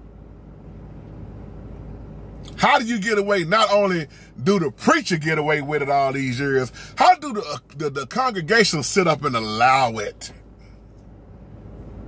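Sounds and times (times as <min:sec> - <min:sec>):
vehicle rumble inside cabin: 0:00.0 - 0:12.0.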